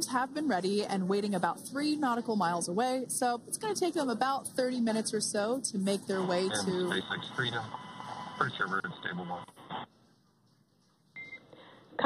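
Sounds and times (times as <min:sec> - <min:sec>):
radio channel hiss: 0:05.9 - 0:09.9.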